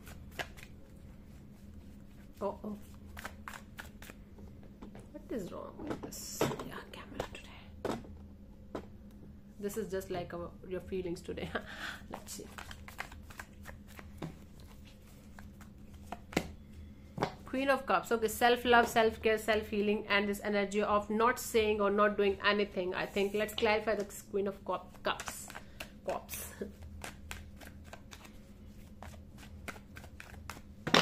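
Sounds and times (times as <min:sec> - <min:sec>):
cards being shuffled: 0:00.0 - 0:04.2, 0:12.1 - 0:16.6, 0:24.8 - 0:31.0.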